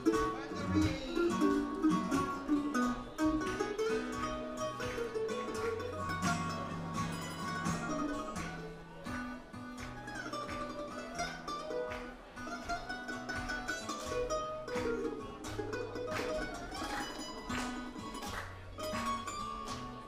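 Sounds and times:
acoustic guitar: 0:00.0 - 0:20.0
mandolin melody: 0:00.0 - 0:20.0.

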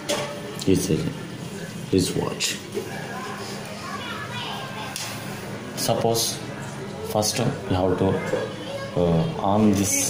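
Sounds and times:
faint background voices: 0:00.1 - 0:10.0.

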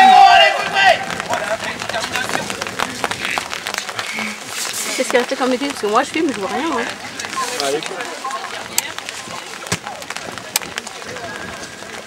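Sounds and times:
outdoor noise: 0:00.0 - 0:12.0
horse hoofbeats cantering: 0:00.6 - 0:12.0.

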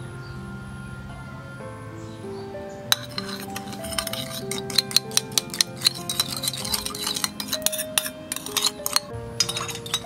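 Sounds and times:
background music with held notes: 0:00.0 - 0:10.0
metal spoon clinking on ceramic bowl: 0:02.9 - 0:10.0.

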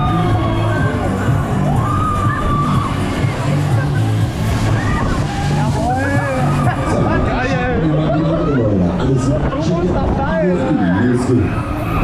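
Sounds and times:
fairground music with bass line: 0:00.0 - 0:09.9.

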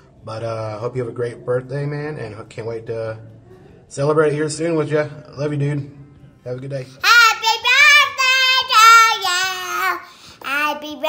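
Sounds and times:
girl singing in a high voice: 0:07.0 - 0:11.0.

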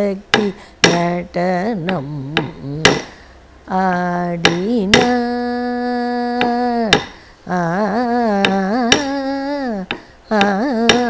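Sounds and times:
woman singing: 0:00.0 - 0:11.0
stick tapping wooden block: 0:00.3 - 0:03.2, 0:03.9 - 0:05.4, 0:06.3 - 0:07.2, 0:08.4 - 0:11.0.

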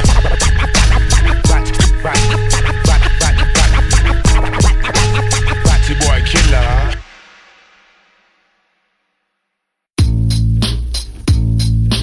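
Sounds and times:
turntable scratching: 0:00.0 - 0:07.0
hip hop beat: 0:00.0 - 0:07.1, 0:10.0 - 0:12.0.

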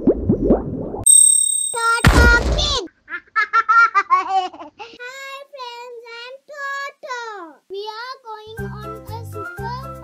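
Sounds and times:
cartoon child giggling: 0:02.9 - 0:04.8
cartoon child sing-song syllables: 0:05.4 - 0:10.0.

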